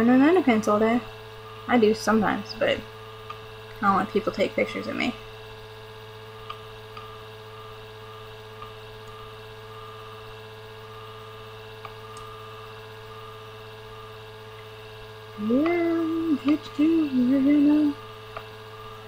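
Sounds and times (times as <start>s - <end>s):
computer fan humming: 0.0s - 19.0s.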